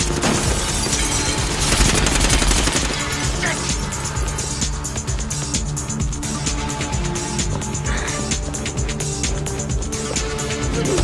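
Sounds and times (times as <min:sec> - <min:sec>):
automatic gunfire: 0:00.0 - 0:03.5
film score music: 0:00.0 - 0:11.0.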